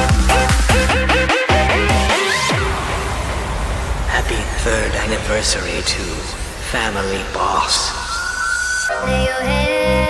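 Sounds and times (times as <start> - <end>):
steady deep bass: 0.0 - 8.2.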